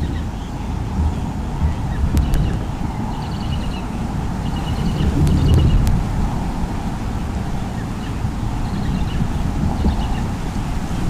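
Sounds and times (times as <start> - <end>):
wind buffeting microphone: 0.0 - 11.0
sharp clicks: 1.0 - 2.6.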